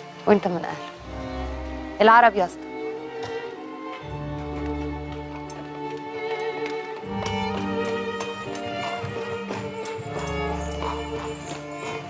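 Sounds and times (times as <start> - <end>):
background music with held tones: 0.0 - 12.0
horse hooves clip-clopping: 0.0 - 12.0.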